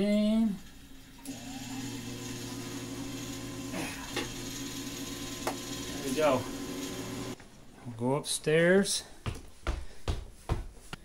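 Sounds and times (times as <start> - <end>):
heavy footsteps on stairs: 9.0 - 11.0.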